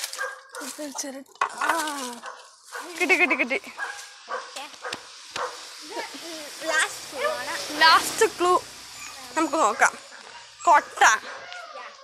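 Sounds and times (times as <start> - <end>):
dog barking: 0.2 - 0.8, 2.2 - 5.6, 10.2 - 11.8.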